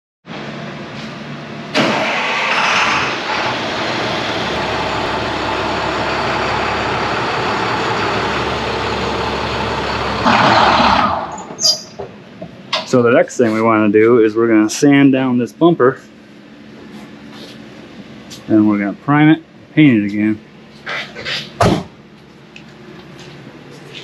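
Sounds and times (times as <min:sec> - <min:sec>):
diesel engine cranking and running: 0:01.6 - 0:11.6.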